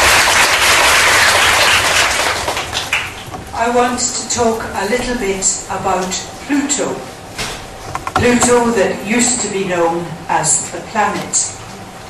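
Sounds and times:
audience applauding: 0:00.0 - 0:03.6.

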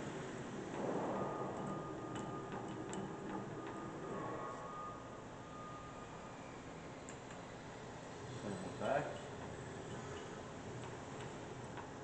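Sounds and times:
machine drive whine: 0:00.0 - 0:12.0.

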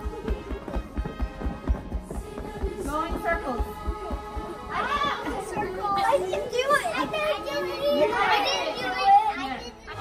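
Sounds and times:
children shouting and squealing: 0:04.7 - 0:10.0.

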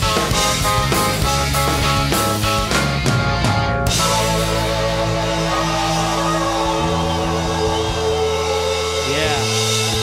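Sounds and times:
live rock band: 0:00.0 - 0:10.0.

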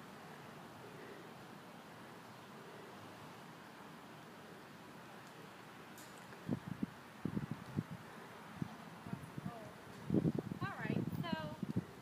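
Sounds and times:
wind buffeting microphone: 0:06.4 - 0:12.0.

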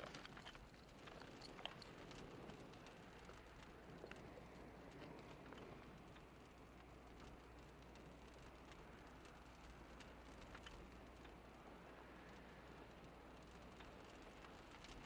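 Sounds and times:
faint ticks: 0:00.0 - 0:15.0.

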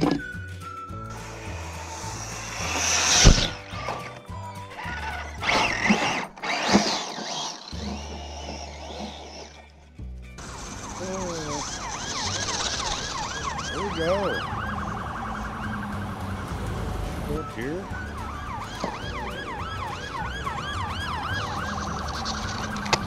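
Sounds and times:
police siren yelping: 0:10.8 - 0:16.6, 0:17.3 - 0:23.0.

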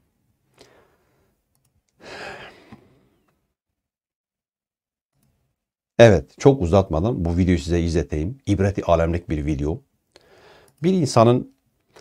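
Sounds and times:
man sighing: 0:02.0 - 0:03.1.

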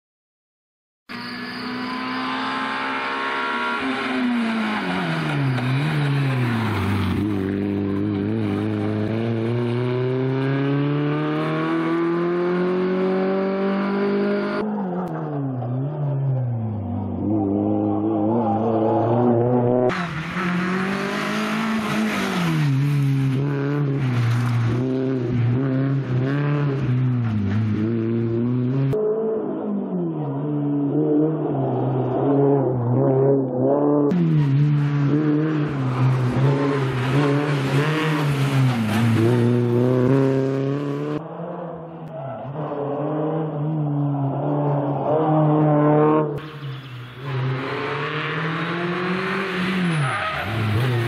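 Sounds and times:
rally car engine revving: 0:01.1 - 0:51.0.

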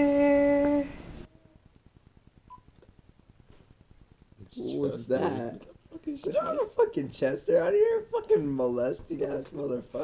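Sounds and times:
person singing: 0:00.0 - 0:01.0.

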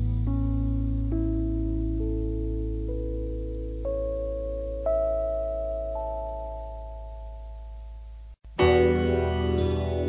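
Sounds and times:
instrumental pop ballad music: 0:08.5 - 0:10.0.

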